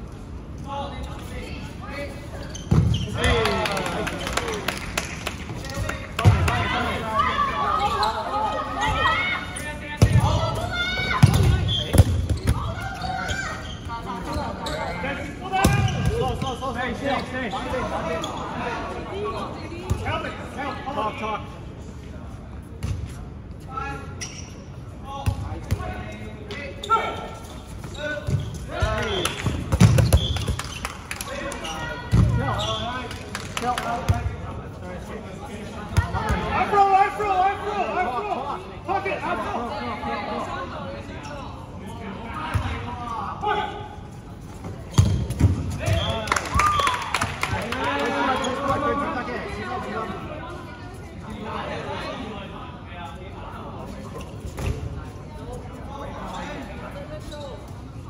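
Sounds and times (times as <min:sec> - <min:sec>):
players shouting and chattering: 0:00.0 - 0:58.0.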